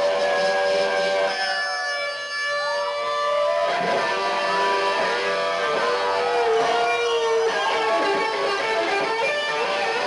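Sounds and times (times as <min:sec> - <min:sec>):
electric guitar feedback: 0:00.0 - 0:10.0.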